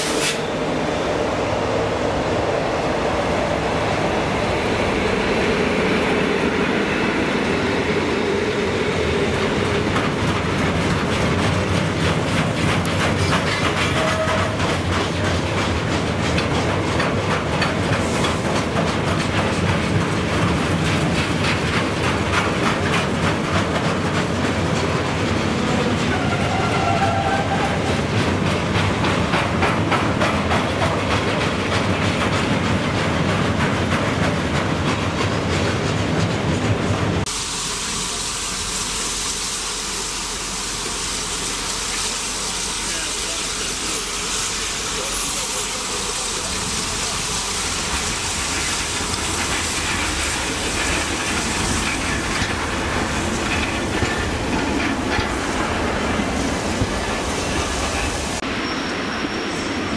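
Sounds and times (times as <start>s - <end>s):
train wheels clickety-clack: 7.4s - 37.3s, 40.8s - 59.0s.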